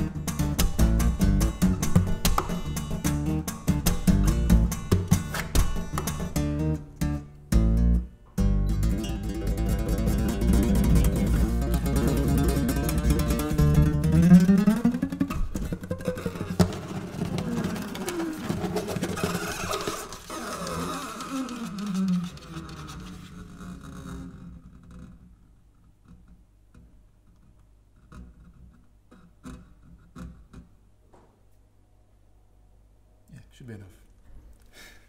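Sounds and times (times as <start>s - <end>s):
fingerstyle acoustic guitar: 0.0s - 23.6s.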